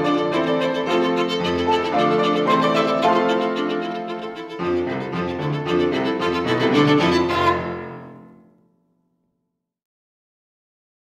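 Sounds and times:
violin and piano chord: 0:00.0 - 0:08.5.

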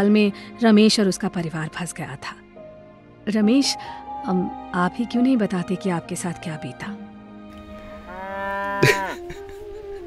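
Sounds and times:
cow mooing: 0:07.7 - 0:09.3.

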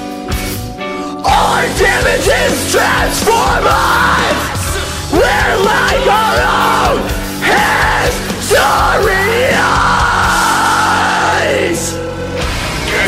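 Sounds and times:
metal backing track: 0:00.0 - 0:13.0
man screaming harsh vocals: 0:01.2 - 0:12.0.

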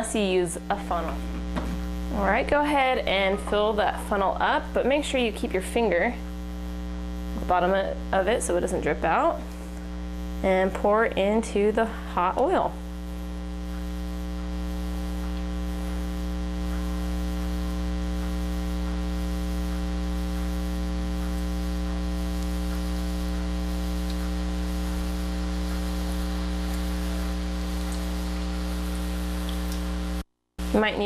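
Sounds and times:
electrical mains hum: 0:00.0 - 0:31.0
batter frying in hot oil: 0:13.0 - 0:30.2.

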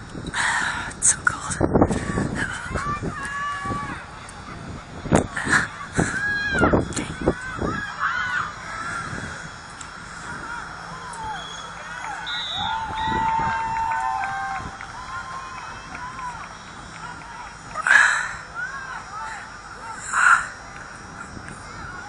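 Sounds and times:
distant voices shouting: 0:01.9 - 0:22.0.

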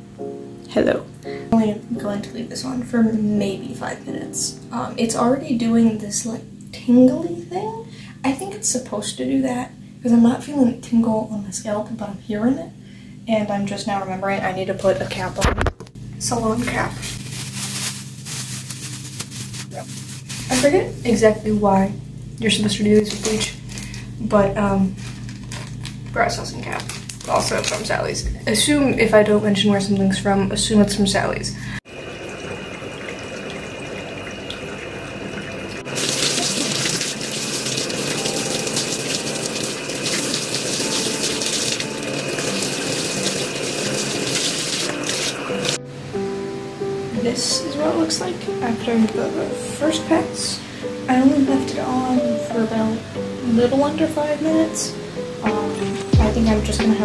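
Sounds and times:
water spraying onto hair: 0:16.6 - 0:21.0, 0:35.8 - 0:45.8
plastic cap crinkling: 0:17.1 - 0:20.7, 0:25.0 - 0:27.9.

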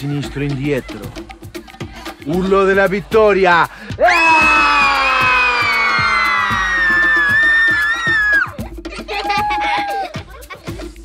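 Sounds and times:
music with steady beat: 0:00.0 - 0:11.0.

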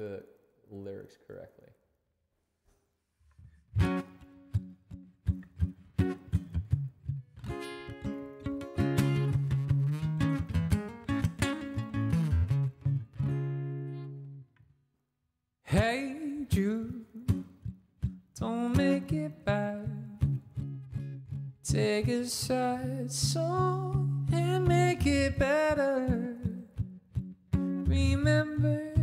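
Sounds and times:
acoustic guitar strumming: 0:03.7 - 0:14.4, 0:15.7 - 0:29.0.

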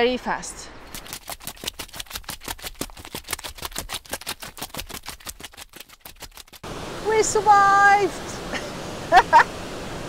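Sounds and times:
footsteps running on gravel: 0:00.9 - 0:06.6.

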